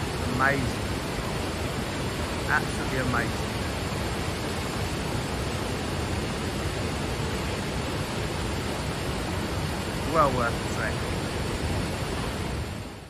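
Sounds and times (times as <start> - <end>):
waterfall rushing: 0.0 - 13.0.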